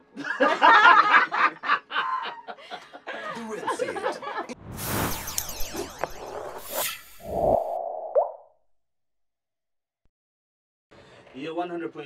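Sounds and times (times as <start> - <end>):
people laughing: 0.2 - 4.6.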